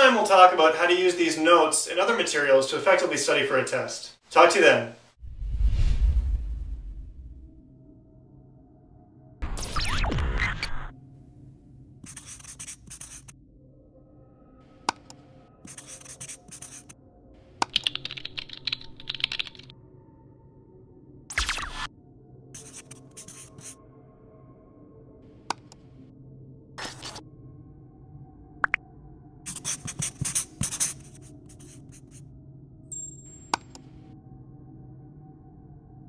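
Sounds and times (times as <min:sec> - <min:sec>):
marker scratching on a surface: 0:12.0 - 0:13.3, 0:15.6 - 0:17.0, 0:22.6 - 0:23.8, 0:26.8 - 0:27.2, 0:29.5 - 0:32.2
pen scribbling: 0:12.0 - 0:13.3, 0:15.6 - 0:16.9, 0:22.6 - 0:23.8, 0:26.8 - 0:27.2, 0:29.5 - 0:32.2
typing on a computer keyboard: 0:17.6 - 0:19.7
sharp click: 0:33.5 - 0:33.9.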